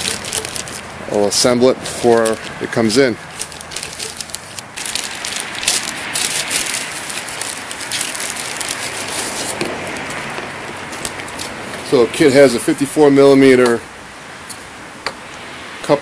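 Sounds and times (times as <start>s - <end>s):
plastic bag crinkling: 0.0s - 11.6s.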